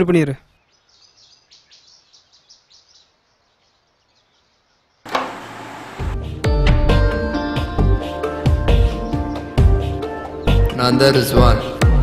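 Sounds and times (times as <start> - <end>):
faint bird chirps: 0.3 - 5.1.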